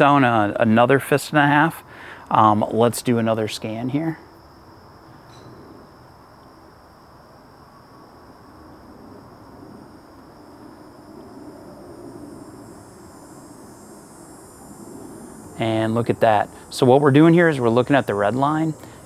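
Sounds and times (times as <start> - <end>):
low even rush: 8.4 - 19.0.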